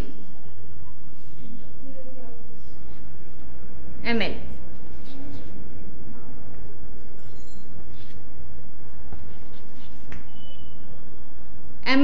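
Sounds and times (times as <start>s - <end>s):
steady low hum: 0.0s - 12.0s
chalk writing on chalkboard: 9.1s - 10.5s.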